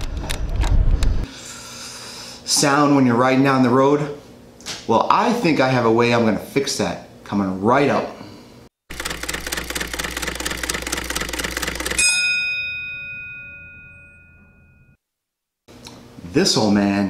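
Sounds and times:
rapid even clicking: 0:08.9 - 0:12.0
bell-like ding: 0:12.0 - 0:15.0.

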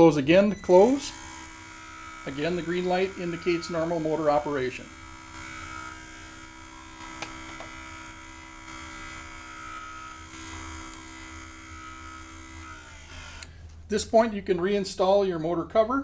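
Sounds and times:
small electric motor humming: 0:00.6 - 0:13.6.

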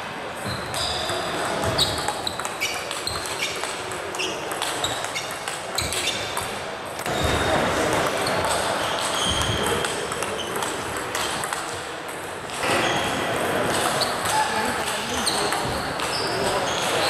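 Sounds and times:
voices echoing in a hall: 0:00.0 - 0:17.0.

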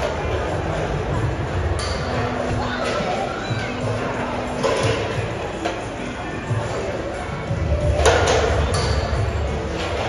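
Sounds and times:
echoing indoor hall ambience: 0:00.0 - 0:10.0.

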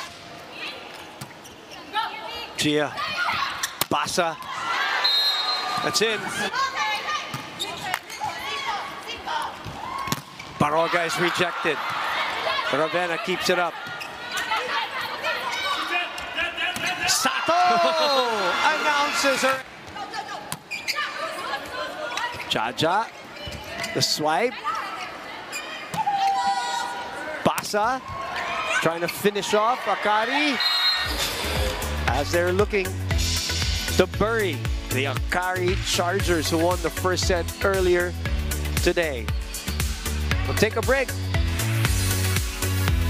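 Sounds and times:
arena crowd chatter: 0:00.0 - 0:33.5.

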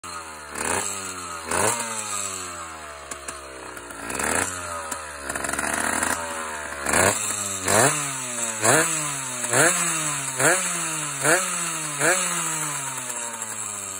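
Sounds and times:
two-stroke engine revving: 0:00.0 - 0:13.9.

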